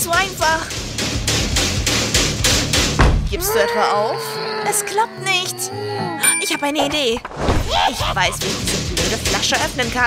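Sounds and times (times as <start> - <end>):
percussive beat: 0.0 - 3.1, 8.0 - 10.0.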